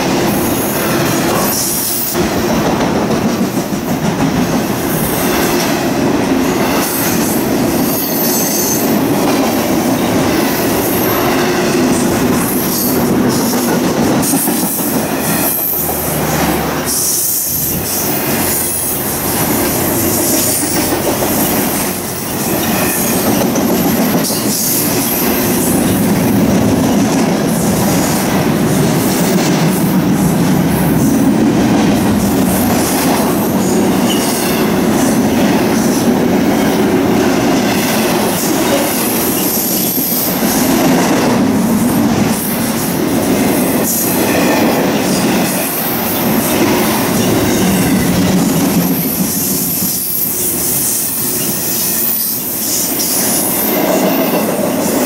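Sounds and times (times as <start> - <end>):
steel wheels rumbling on rail: 0.0 - 55.0.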